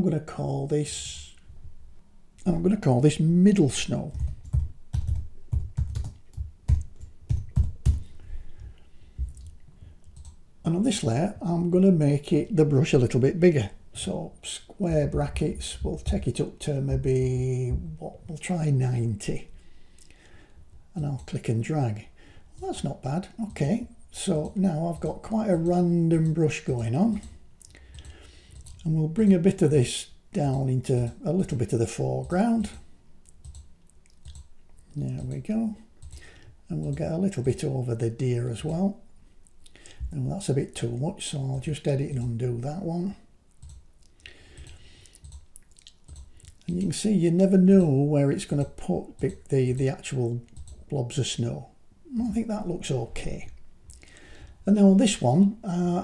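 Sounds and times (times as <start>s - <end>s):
low steady hum: 0.0s - 56.0s
computer keyboard typing: 4.0s - 8.1s, 27.1s - 28.8s, 44.6s - 46.9s
computer mouse clicks: 27.1s - 28.8s, 33.2s - 35.4s, 36.0s - 36.2s, 43.5s - 46.9s.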